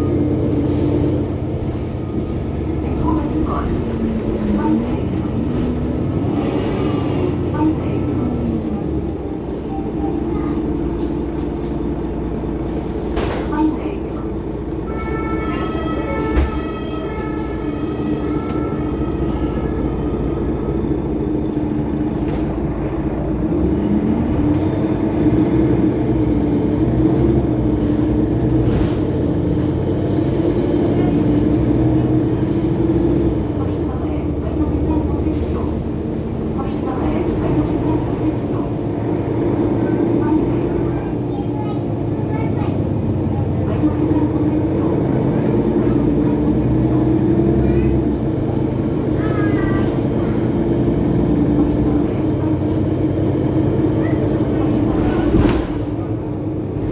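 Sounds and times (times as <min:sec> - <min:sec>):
bus engine humming: 0:00.0 - 0:56.9.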